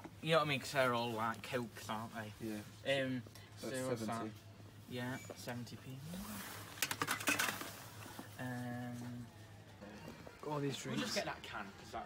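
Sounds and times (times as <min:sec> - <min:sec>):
cans clinking in basket: 0:06.8 - 0:07.8.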